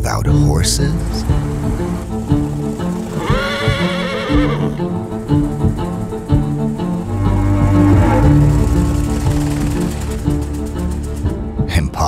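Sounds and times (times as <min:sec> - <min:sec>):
bowed string music: 0:00.0 - 0:12.0
horse whinnying: 0:03.0 - 0:05.0.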